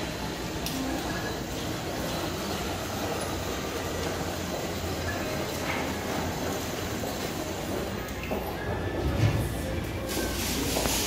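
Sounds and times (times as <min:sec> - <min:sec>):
room background noise: 0:00.0 - 0:11.0.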